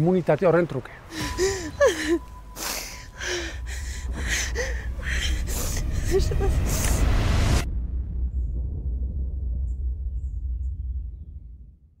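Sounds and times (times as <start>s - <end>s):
deep low rumble: 1.1s - 12.0s.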